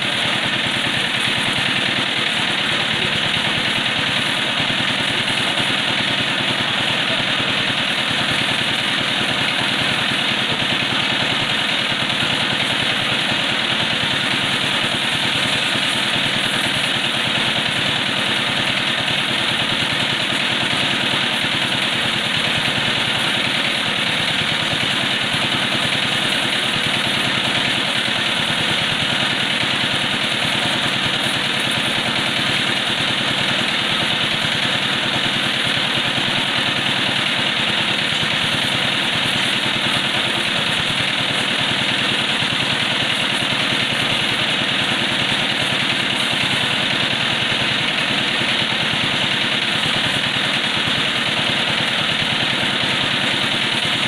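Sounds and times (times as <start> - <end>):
pressure washer pump running: 0.0 - 54.0
water spraying from hose: 0.0 - 54.0.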